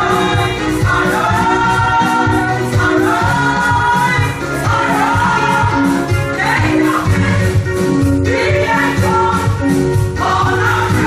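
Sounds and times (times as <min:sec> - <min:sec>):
women singing gospel: 0:00.0 - 0:11.0.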